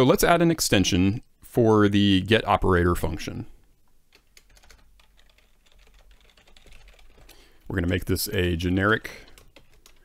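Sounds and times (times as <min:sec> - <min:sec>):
faint keyboard typing: 0:04.1 - 0:10.0.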